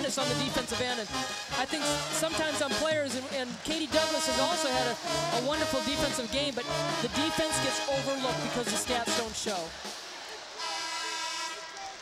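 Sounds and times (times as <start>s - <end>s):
buzzy horn tone: 0.0s - 3.3s, 3.9s - 9.5s, 10.6s - 12.0s
crowd noise: 0.0s - 12.0s.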